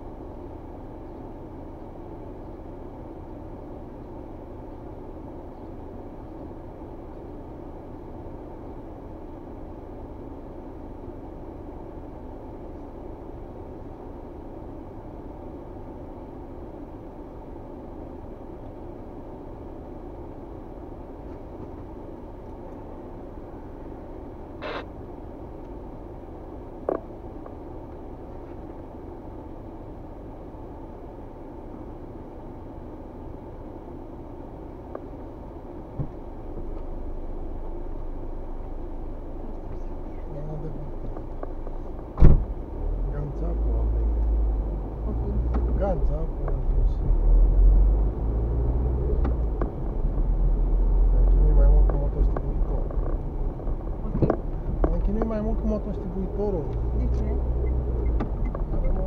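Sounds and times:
car engine hum: 0:00.0 - 0:59.0
engine and road rumble: 0:00.0 - 0:59.0.

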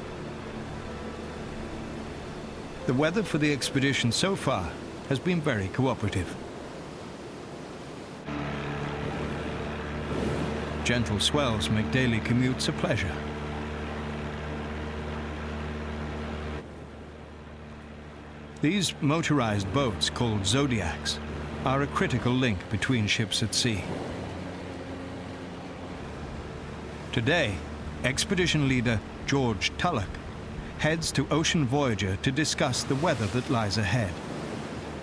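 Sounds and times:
outboard motor running: 0:00.0 - 0:07.6, 0:08.2 - 0:35.0
wind and sea rushing: 0:00.0 - 0:15.6, 0:16.6 - 0:35.0.

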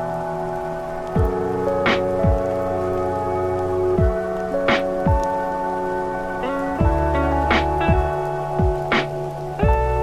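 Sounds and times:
swelling hiss: 0:00.0 - 0:10.0.

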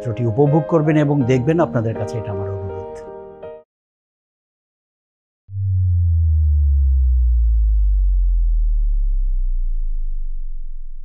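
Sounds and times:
deep electronic bass sweep: 0:05.5 - 0:11.0.

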